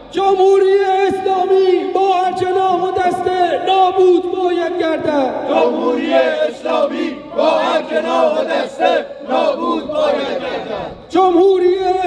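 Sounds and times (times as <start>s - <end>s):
crowd chanting in unison: 5.4s - 11.1s.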